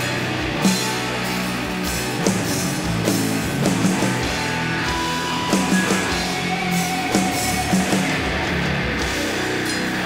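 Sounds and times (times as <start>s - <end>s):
doom metal band playing: 0.0s - 10.0s.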